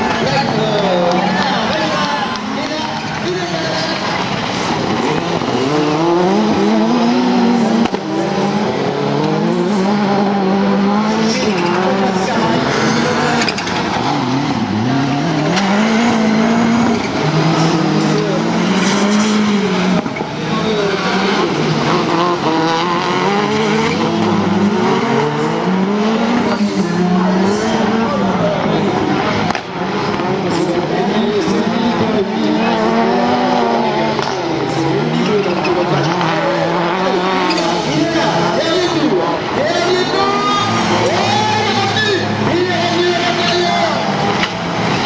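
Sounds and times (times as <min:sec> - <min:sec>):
race car engines revving: 0:00.0 - 0:45.0.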